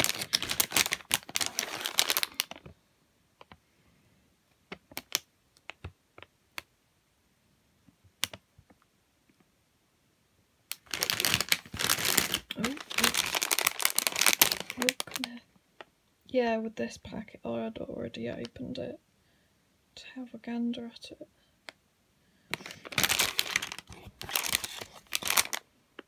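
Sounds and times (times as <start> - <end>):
plastic bags crinkling: 0.0 - 2.7, 10.7 - 15.4, 22.5 - 25.7.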